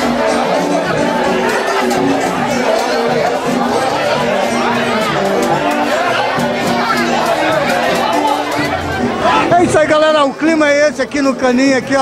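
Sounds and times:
crowd chatter: 0:00.0 - 0:12.0
live samba music with percussion: 0:00.0 - 0:12.0
man's voice: 0:09.2 - 0:12.0.

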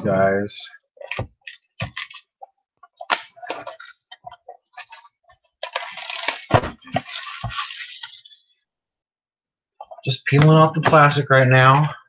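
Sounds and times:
plastic shrink-wrap crinkling: 0:01.4 - 0:02.4, 0:03.0 - 0:08.6.

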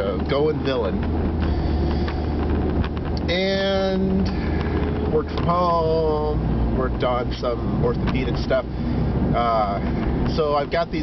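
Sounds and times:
car engine hum: 0:00.0 - 0:11.0
road noise: 0:00.0 - 0:11.0.

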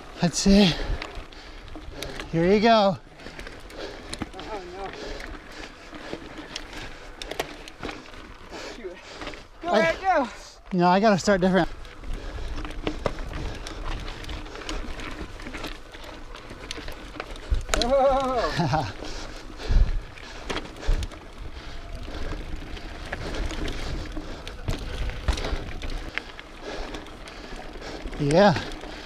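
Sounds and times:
bike tyre and drivetrain rattle: 0:00.0 - 0:29.0
person exclaiming: 0:09.6 - 0:10.6, 0:17.8 - 0:18.9.

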